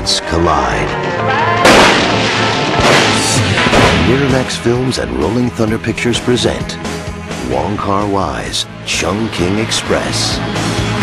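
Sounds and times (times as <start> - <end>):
music: 0.0 - 11.0
sharp bangs: 1.6 - 5.4.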